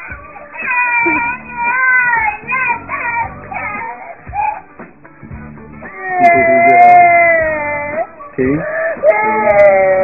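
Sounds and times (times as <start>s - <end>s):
girl wailing and crying: 0.4s - 4.7s, 5.8s - 10.0s.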